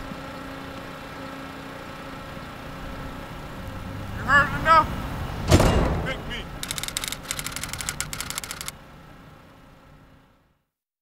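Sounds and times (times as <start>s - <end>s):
rapid sharp clicks: 5.5s - 8.8s.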